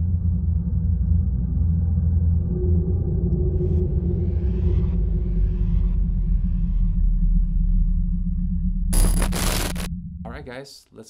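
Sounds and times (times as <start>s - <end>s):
deep low rumbling drone: 0.0s - 10.3s.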